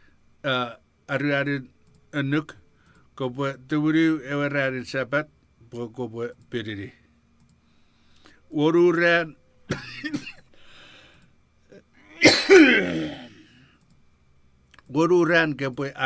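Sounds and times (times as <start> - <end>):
click: 1.8 - 2.0, 7.4 - 7.6, 13.8 - 14.0, 14.7 - 14.9
man coughing: 9.7 - 10.5, 12.0 - 13.4
short held vocal sound: 11.7 - 13.6.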